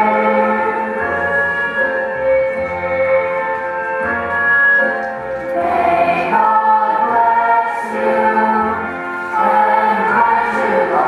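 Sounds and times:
low accompaniment: 0.0s - 11.0s
children's chorus singing: 5.5s - 11.0s.

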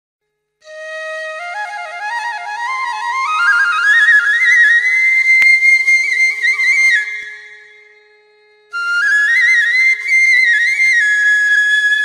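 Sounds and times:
solo flute melody: 0.6s - 12.0s.

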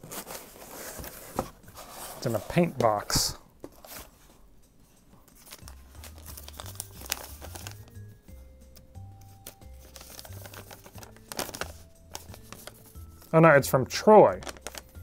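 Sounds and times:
paper rustling and crinkling: 0.0s - 4.4s, 5.2s - 8.0s, 9.4s - 13.4s, 14.3s - 15.0s
soft background music: 0.1s - 15.0s.

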